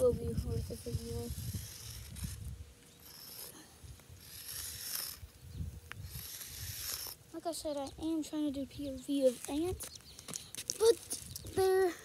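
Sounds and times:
chalk scraping on pavement: 0.2 - 7.9.

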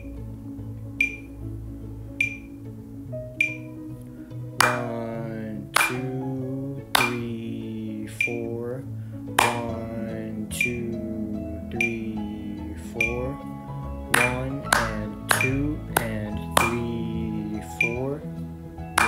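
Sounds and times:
metronome clicking: 1.0 - 1.4, 2.2 - 2.6, 3.4 - 3.8, 4.6 - 5.1, 5.8 - 6.3, 7.0 - 7.4, 8.1 - 8.7, 9.4 - 10.9, 11.7 - 12.3, 12.9 - 13.4, 14.1 - 18.2
hand claps: 4.6 - 5.0, 5.8 - 6.2, 7.0 - 7.4, 9.4 - 9.8, 14.1 - 17.1
person counting aloud: 9.4 - 11.0.

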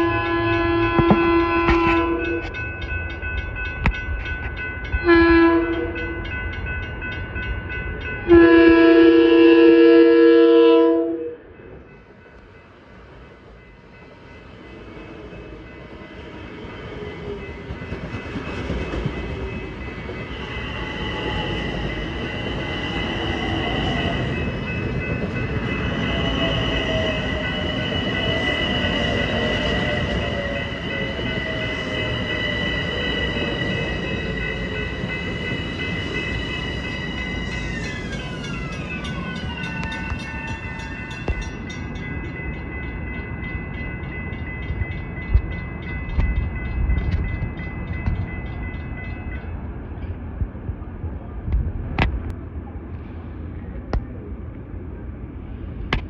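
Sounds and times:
train wheels rumbling: 11.6 - 54.4.

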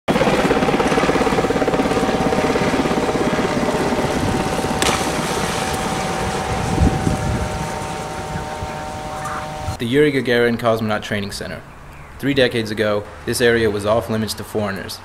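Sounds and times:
engine pulsing: 0.1 - 9.8
high whine: 1.9 - 10.0.

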